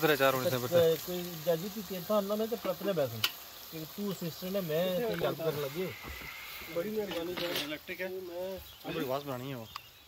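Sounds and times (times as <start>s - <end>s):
people talking: 0.0s - 9.8s
patties sizzling on hot slab: 0.0s - 10.0s.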